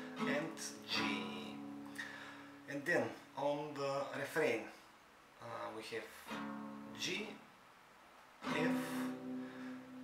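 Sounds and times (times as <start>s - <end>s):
acoustic guitar chord ringing: 0.0s - 3.4s, 6.3s - 7.0s, 8.4s - 10.0s.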